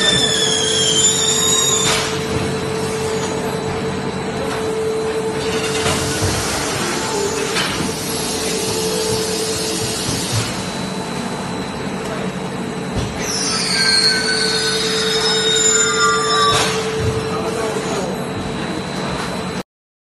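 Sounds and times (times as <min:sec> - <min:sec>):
constant hum tone: 0:00.0 - 0:19.6
machine drone: 0:00.0 - 0:19.6.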